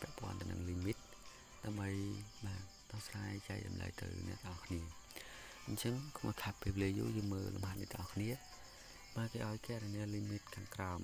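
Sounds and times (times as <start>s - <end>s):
man speaking: 0.0s - 5.0s, 5.6s - 11.0s
faint high-pitched whine: 0.0s - 11.0s.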